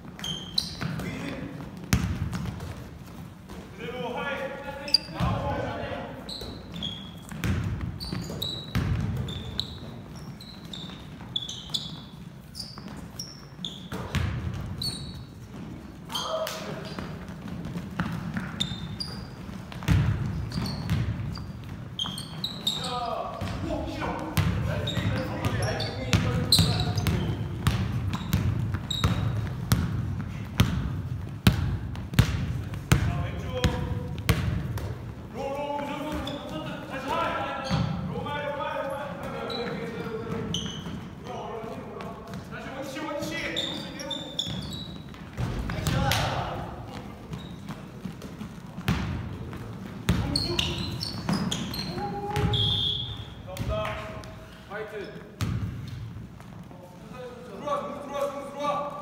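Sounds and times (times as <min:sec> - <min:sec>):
basketball bouncing on wooden floor: 0:01.7 - 0:02.9, 0:06.4 - 0:11.3, 0:13.8 - 0:14.9, 0:16.8 - 0:23.7, 0:24.3 - 0:35.2, 0:44.4 - 0:52.6, 0:55.4 - 0:56.2
players calling out: 0:50.2 - 0:54.1.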